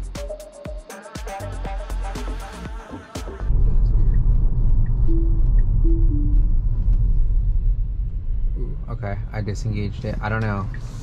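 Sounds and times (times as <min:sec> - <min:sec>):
music: 0:00.0 - 0:03.6, 0:05.1 - 0:06.6.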